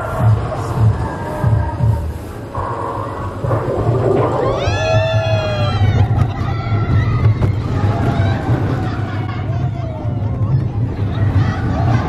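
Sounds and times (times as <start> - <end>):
roller coaster rumble: 0.0 - 12.0.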